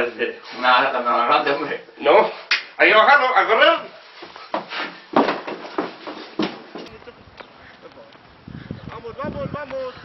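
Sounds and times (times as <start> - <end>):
background noise: 0.0 - 10.0.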